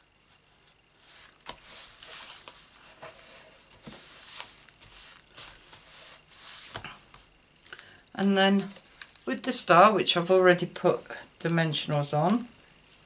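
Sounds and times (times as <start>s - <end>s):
card stock rustling and sliding: 0.6s - 7.3s.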